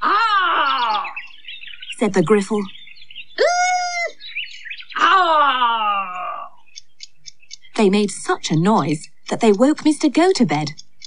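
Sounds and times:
cartoon character wailing: 0:00.0 - 0:01.2, 0:03.4 - 0:04.2, 0:05.0 - 0:06.6
faint ticks: 0:10.7 - 0:11.0.

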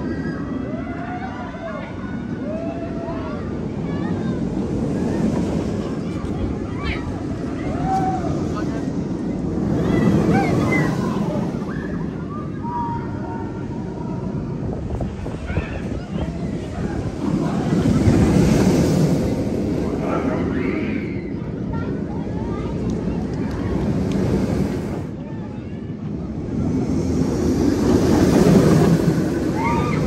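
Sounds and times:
roller coaster rumbling roar: 0:00.0 - 0:30.0
riders screaming and shouting: 0:09.6 - 0:14.4, 0:29.3 - 0:30.0.

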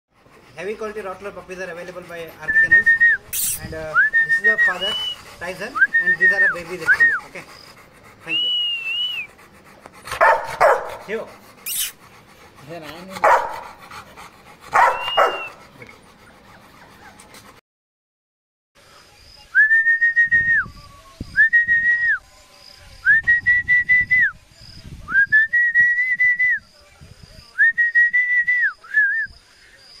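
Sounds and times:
person whistling high notes: 0:08.3 - 0:09.3.

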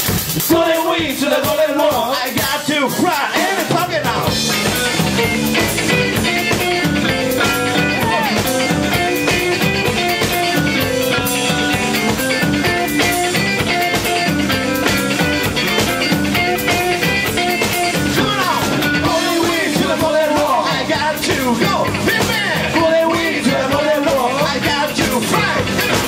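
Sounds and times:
drum kit beat: 0:00.0 - 0:26.0
electric guitars: 0:00.0 - 0:26.0.

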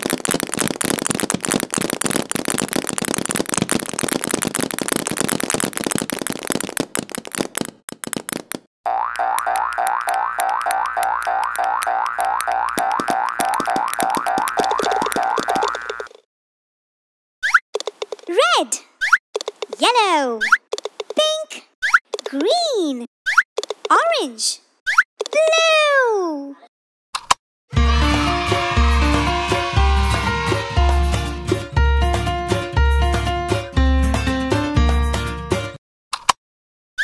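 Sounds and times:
small balls clattering: 0:00.0 - 0:08.6
cartoon boings: 0:08.9 - 0:16.1.

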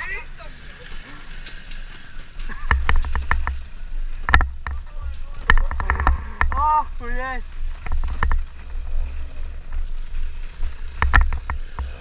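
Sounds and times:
scooter knocks and rattles: 0:01.4 - 0:06.7, 0:07.8 - 0:08.6, 0:10.8 - 0:12.0.

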